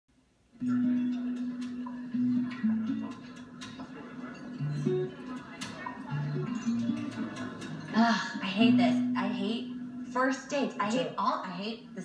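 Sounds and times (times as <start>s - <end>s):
acoustic guitar music: 0.5s - 12.0s.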